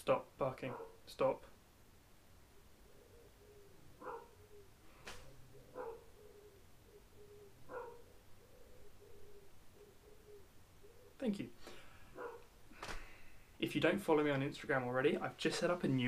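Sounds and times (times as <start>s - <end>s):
dog barking faintly: 0.6s - 1.1s, 4.0s - 4.4s, 5.6s - 6.1s, 7.7s - 8.1s, 12.1s - 12.5s.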